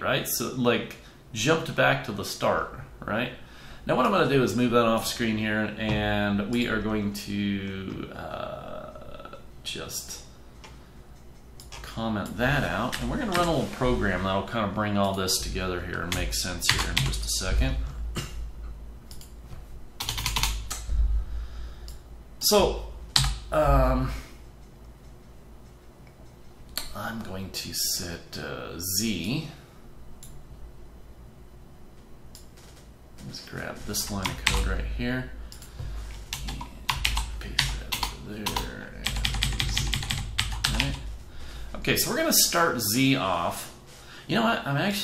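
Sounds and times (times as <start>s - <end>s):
computer keyboard keystrokes: 20.0s - 20.9s, 35.5s - 41.1s.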